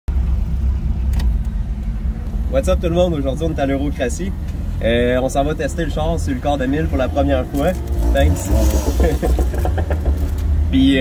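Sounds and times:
car engine idling: 0.1 - 11.0.

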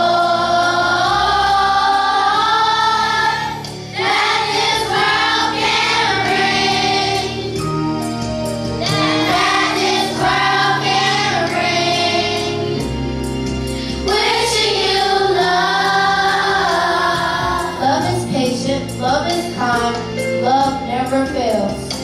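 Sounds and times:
children's choir singing: 0.0 - 7.6, 8.8 - 12.9, 14.0 - 18.2
instrumental accompaniment with beat: 0.0 - 22.0.

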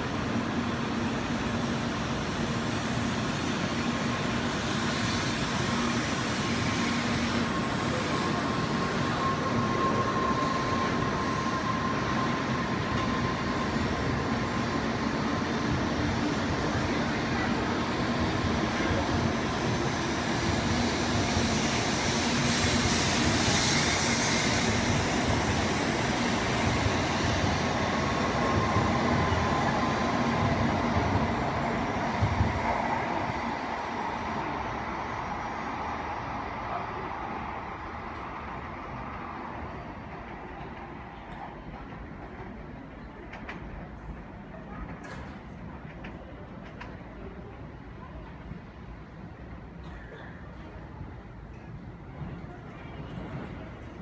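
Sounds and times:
train rolling past: 0.0 - 54.0.

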